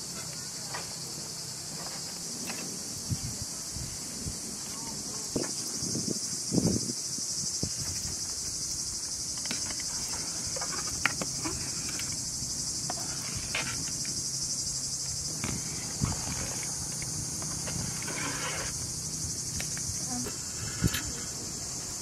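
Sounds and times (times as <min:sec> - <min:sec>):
crickets chirping: 0:00.0 - 0:22.0.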